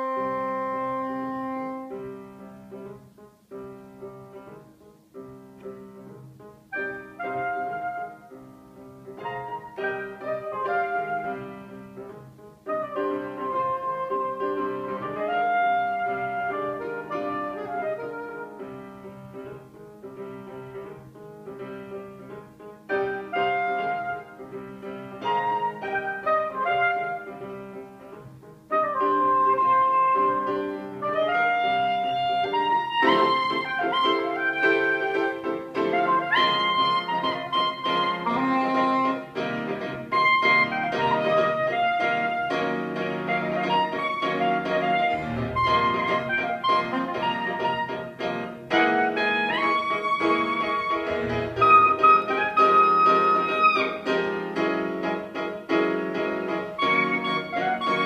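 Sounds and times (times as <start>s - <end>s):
soprano saxophone melody: 0.0s - 2.4s, 6.7s - 8.5s, 12.7s - 19.0s, 22.9s - 24.5s, 25.2s - 27.7s, 28.7s - 54.5s, 56.8s - 58.0s
grand piano: 0.0s - 58.0s.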